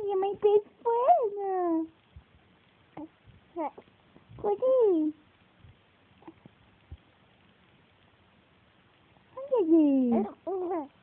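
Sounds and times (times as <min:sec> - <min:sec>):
baby cooing: 0:03.0 - 0:03.8, 0:10.2 - 0:11.0.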